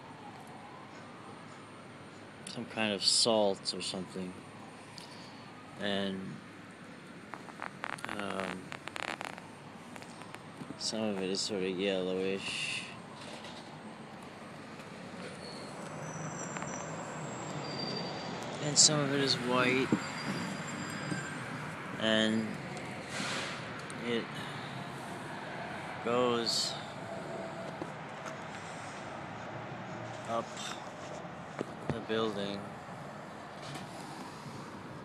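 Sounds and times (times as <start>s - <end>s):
outdoor urban background noise: 0.0s - 35.0s
road traffic noise: 0.0s - 35.0s
faint high whistling tones: 15.3s - 21.5s.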